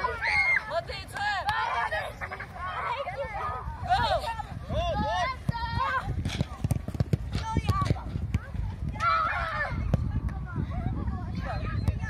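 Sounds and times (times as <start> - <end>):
children shouting: 0.0 - 0.9.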